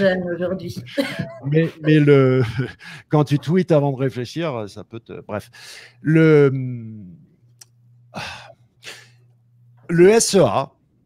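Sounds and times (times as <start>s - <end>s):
faint low hum: 0.0s - 11.0s
man speaking: 1.4s - 7.2s, 9.9s - 10.7s
man breathing in: 5.6s - 6.0s, 8.2s - 9.2s
man sighing: 8.1s - 9.2s.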